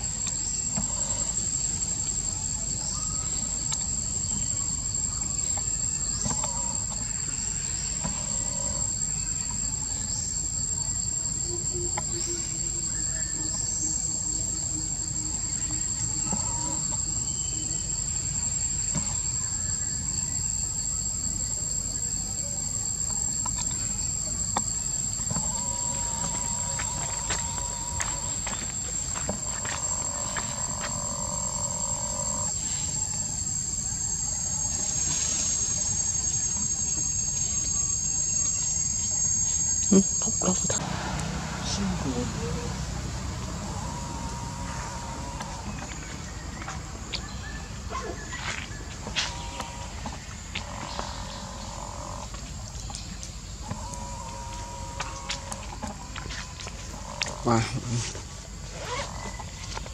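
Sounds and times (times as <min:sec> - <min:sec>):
insects chirping: 0:00.0 - 0:59.9.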